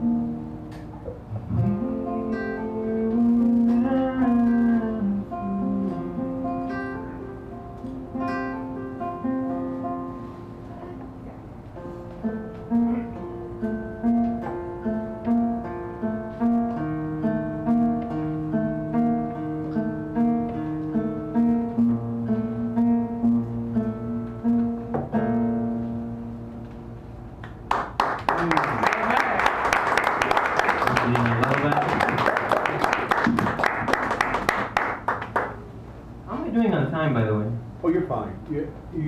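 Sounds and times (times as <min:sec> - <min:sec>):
fingerpicked acoustic guitar: 0:00.0 - 0:27.4
audience applause: 0:27.7 - 0:35.6.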